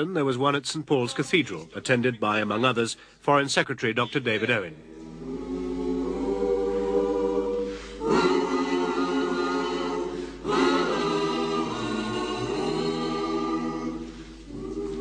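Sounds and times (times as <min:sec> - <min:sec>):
choir singing long notes: 0:04.6 - 0:15.0.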